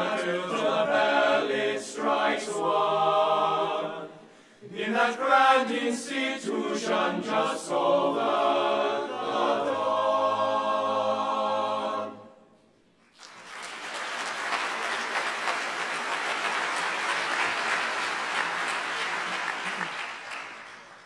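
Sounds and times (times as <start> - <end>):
male choir holding chord: 0.0 - 12.3
audience applause: 13.1 - 21.0.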